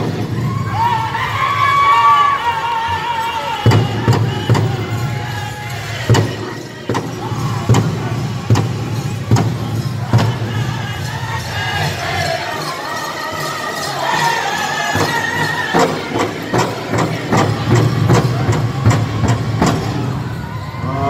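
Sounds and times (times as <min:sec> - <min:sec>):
group singing in high voices: 0:00.0 - 0:21.0
bass drum beats: 0:03.7 - 0:11.2, 0:15.0 - 0:20.3.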